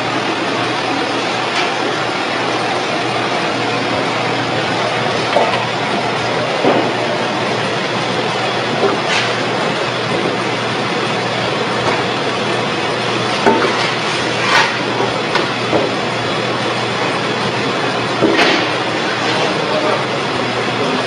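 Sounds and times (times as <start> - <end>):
oil press machine running: 0.0 - 21.0.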